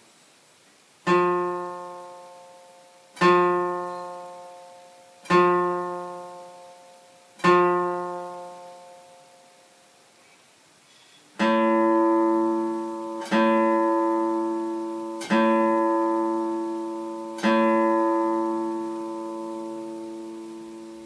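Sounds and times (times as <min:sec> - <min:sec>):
guitar chord ringing: 0:01.0 - 0:10.0, 0:11.4 - 0:21.0.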